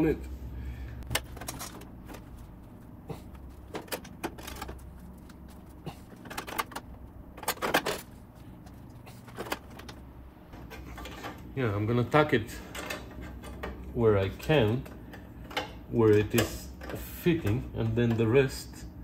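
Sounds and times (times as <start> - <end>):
low steady hum: 0.0 - 19.0
sheet metal clinking and scraping: 12.5 - 18.3.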